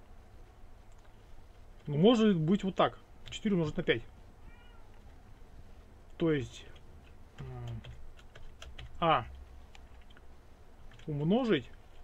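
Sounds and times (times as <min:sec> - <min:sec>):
keyboard typing: 0:00.9 - 0:01.2, 0:06.7 - 0:12.0.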